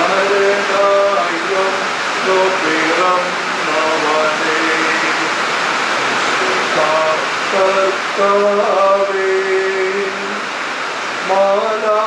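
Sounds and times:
chanted hymn singing: 0.0 - 5.5, 6.4 - 10.4
steady loud hiss: 0.0 - 12.0.

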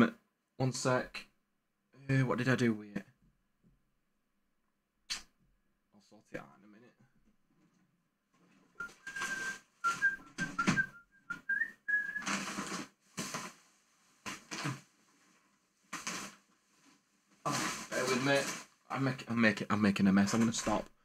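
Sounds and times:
rummaging through boxes: 8.5 - 10.9, 11.5 - 18.8
man whistling: 8.8 - 12.3.

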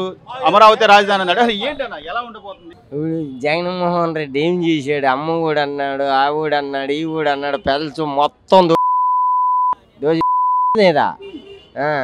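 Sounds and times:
censor bleep: 8.8 - 10.8.

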